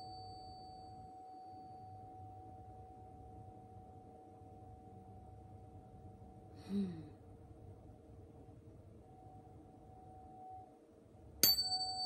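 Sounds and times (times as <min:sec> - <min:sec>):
tuning fork struck with a clang: 0:00.0 - 0:02.0, 0:11.4 - 0:12.0
tuning fork humming: 0:00.0 - 0:04.9.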